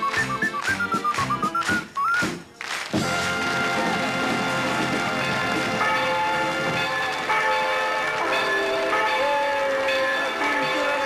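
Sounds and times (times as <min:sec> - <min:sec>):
church bells ringing: 0:04.5 - 0:11.0.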